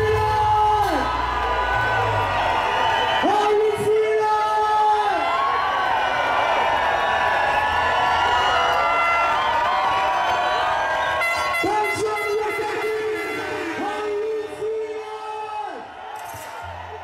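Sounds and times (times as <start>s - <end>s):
crowd cheering and singing: 0.0s - 17.0s.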